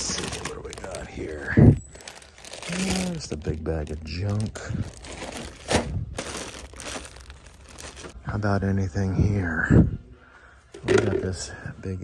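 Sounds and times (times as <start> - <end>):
plastic bags crinkling: 0.0 - 8.2.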